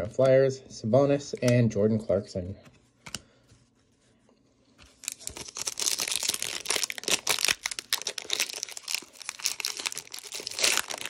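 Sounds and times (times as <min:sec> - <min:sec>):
plastic wrapper crinkling and tearing: 0:04.9 - 0:11.0.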